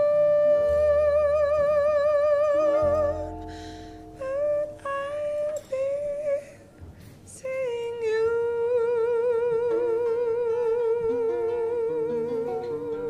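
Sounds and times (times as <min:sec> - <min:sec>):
person humming a melody: 0:00.0 - 0:06.7, 0:07.3 - 0:13.0
soft accompanying notes: 0:00.0 - 0:13.0.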